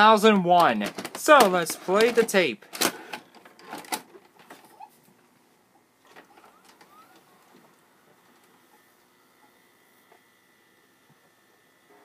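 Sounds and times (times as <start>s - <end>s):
video recorder clicks and whir: 0.2s - 4.8s, 6.0s - 10.3s.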